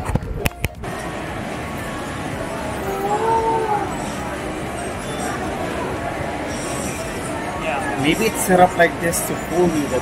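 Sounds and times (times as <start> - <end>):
arcade machine noise: 0.0 - 10.0.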